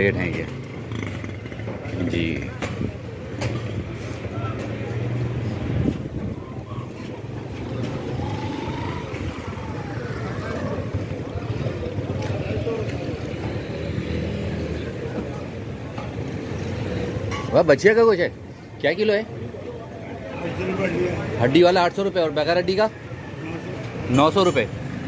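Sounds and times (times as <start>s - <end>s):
vehicle engines running: 0.0s - 25.0s.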